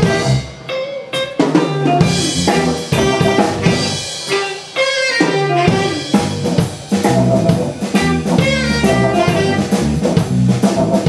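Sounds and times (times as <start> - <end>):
live rock jazz band playing: 0.0 - 11.0
bass drum: 2.0 - 4.0, 5.7 - 11.0
snare drum: 5.3 - 11.0.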